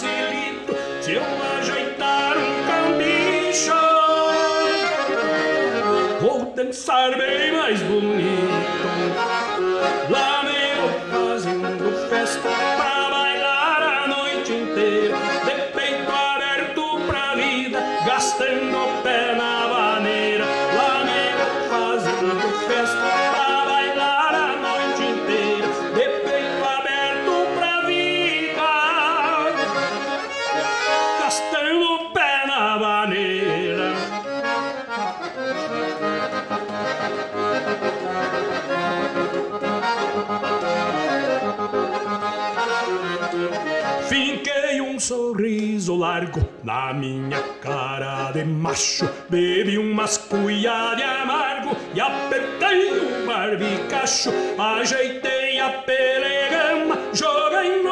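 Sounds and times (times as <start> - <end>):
piano accordion dance tune: 0.0 - 57.9.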